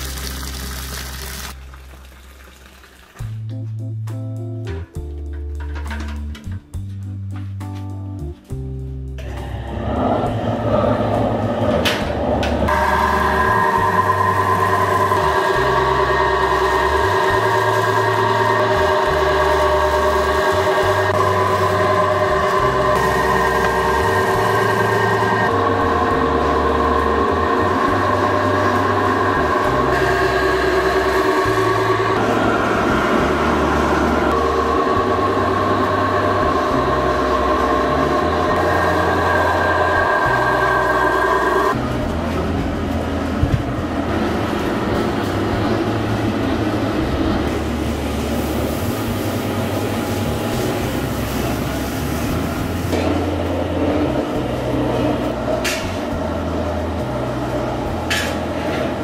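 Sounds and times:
sustained chords: 9.2 - 59.0.

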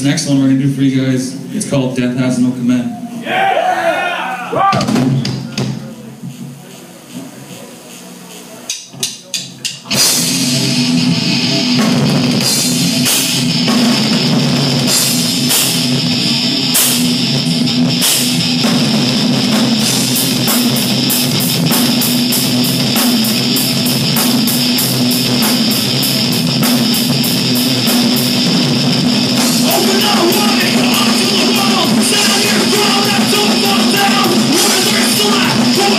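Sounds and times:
drum kit with cymbals: 4.5 - 35.9
short drum hits: 4.7 - 5.9
distorted electric guitar: 9.9 - 35.9
live heavy metal band: 9.9 - 35.9.

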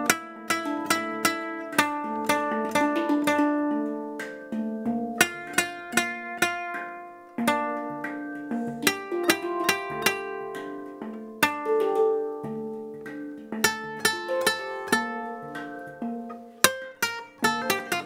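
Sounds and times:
classical guitar plucked: 0.0 - 18.0
handpan: 0.0 - 18.0.

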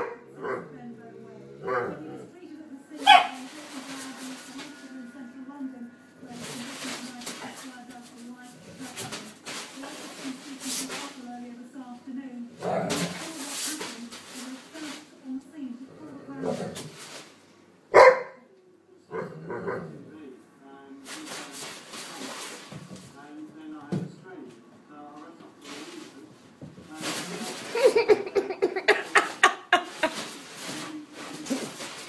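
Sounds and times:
dog barking: 0.0 - 0.8, 1.6 - 2.1, 3.0 - 3.4, 17.9 - 18.5, 19.1 - 19.9
dogs growling and snarling: 0.0 - 2.4, 12.6 - 13.2, 15.8 - 17.0, 19.1 - 20.1
television voice talking: 0.0 - 16.8, 27.0 - 30.1.

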